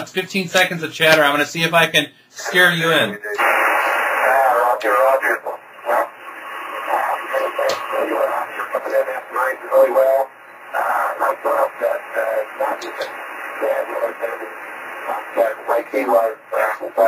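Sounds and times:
man's voice over radio speaker: 0:00.0 - 0:17.0
radio hiss: 0:00.0 - 0:17.0.

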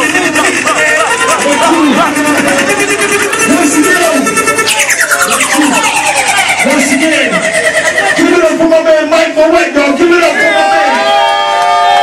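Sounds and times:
steady high tone: 0:00.0 - 0:10.2
man shouting through distorted pa: 0:01.0 - 0:02.7.

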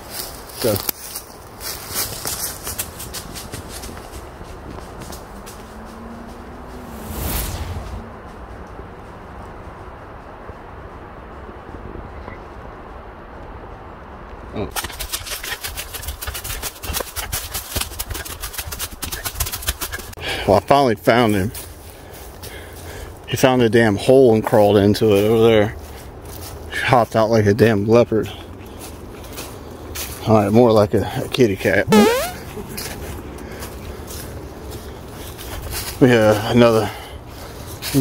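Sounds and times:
footsteps running through dry leaves: 0:00.0 - 0:07.2, 0:14.7 - 0:20.2.

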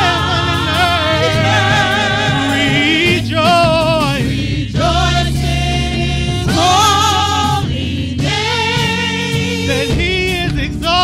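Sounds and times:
gospel choir singing: 0:00.0 - 0:10.6
low instrumental accompaniment: 0:02.5 - 0:08.4.

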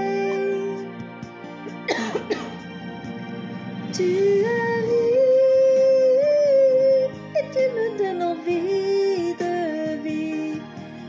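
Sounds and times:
soft instrumental music: 0:00.0 - 0:11.0
woman coughing: 0:01.9 - 0:02.6.

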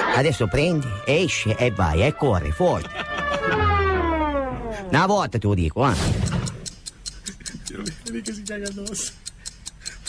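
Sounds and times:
rapid even ticking: 0:06.2 - 0:10.0.

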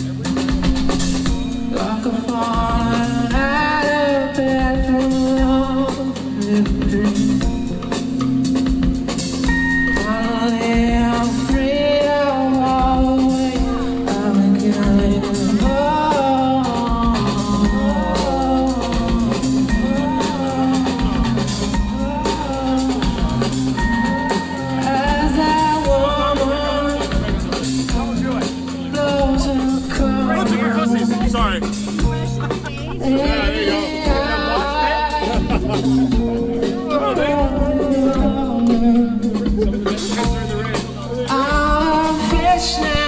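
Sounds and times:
electric guitar: 0:00.0 - 0:43.0
rock band playing live: 0:00.0 - 0:43.0
steady bass line: 0:00.0 - 0:43.0.

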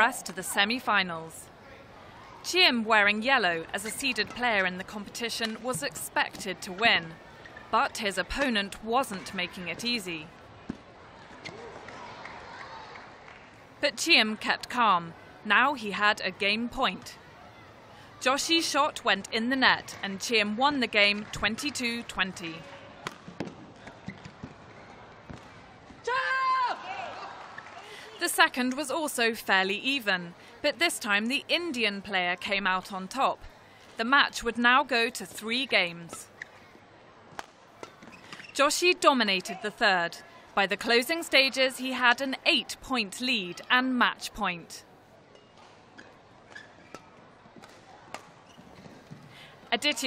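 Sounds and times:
sports hall ambience: 0:00.0 - 0:50.0
racket striking shuttlecock: 0:23.0 - 0:24.5, 0:37.3 - 0:38.4, 0:45.4 - 0:48.4.

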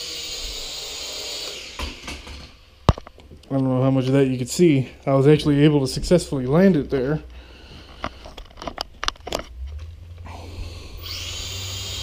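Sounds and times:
quadcopter propellers whirring: 0:10.3 - 0:12.0.

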